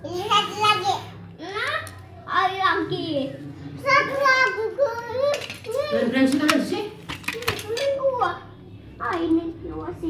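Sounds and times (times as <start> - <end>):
child talking: 0.0 - 6.2, 7.4 - 8.5.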